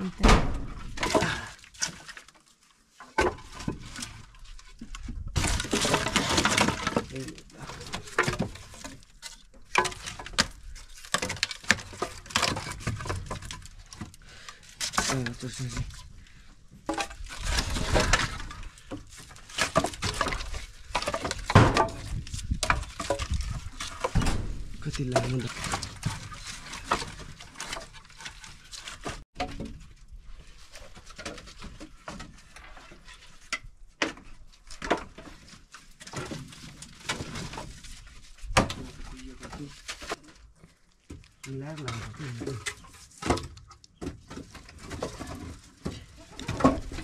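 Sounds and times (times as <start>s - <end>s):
firewood sticks knocking together: 0.7s - 2.3s, 4.8s - 16.1s, 16.8s - 29.8s, 41.0s - 47.0s.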